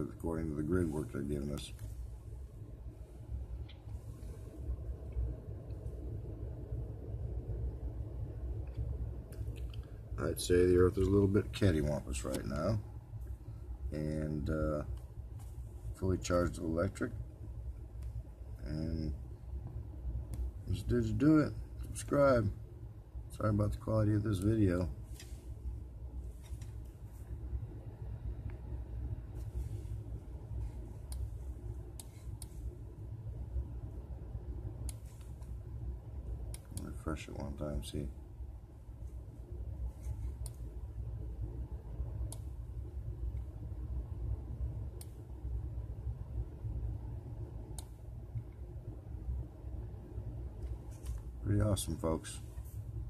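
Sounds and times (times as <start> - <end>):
low room noise rumble: 0.0 - 53.0.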